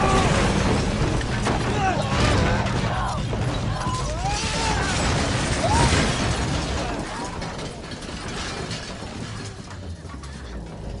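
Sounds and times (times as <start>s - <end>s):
rattling and clattering: 0.0s - 11.0s.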